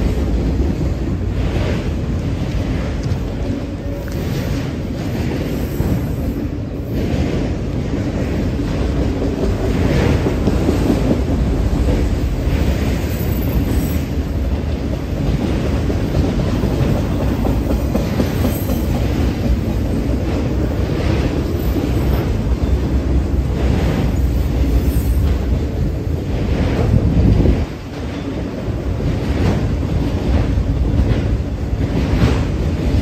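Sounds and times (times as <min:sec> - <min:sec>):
train wheels rumbling on rail: 0:00.0 - 0:33.0
wheels clacking over rail joints: 0:00.0 - 0:33.0.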